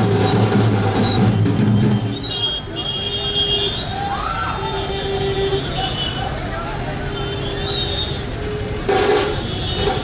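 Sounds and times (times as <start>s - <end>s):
street noise: 0.0s - 10.0s
voices: 2.2s - 10.0s.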